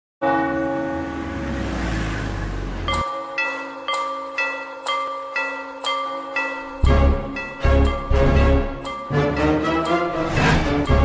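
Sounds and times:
large bell ringing: 0:02.8 - 0:11.0.

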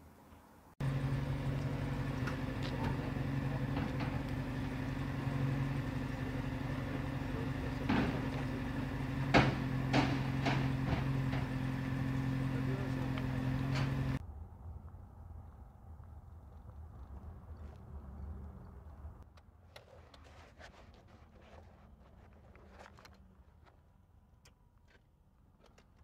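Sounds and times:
vehicle engine idling: 0:00.8 - 0:19.2
people talking: 0:02.2 - 0:08.6, 0:12.3 - 0:14.2
sharp knocks: 0:07.8 - 0:11.8.

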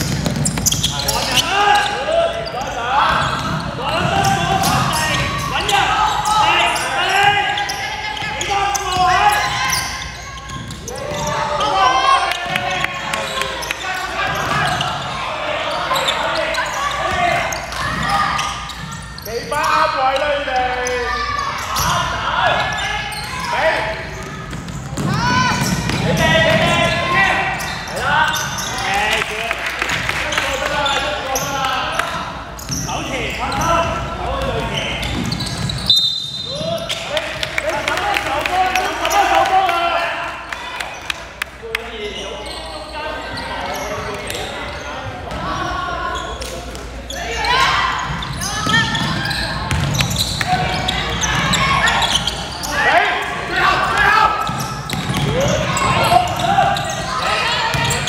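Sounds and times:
voices shouting in echoing gym: 0:00.0 - 0:58.0
basketball bouncing on hardwood: 0:48.6 - 0:50.1.

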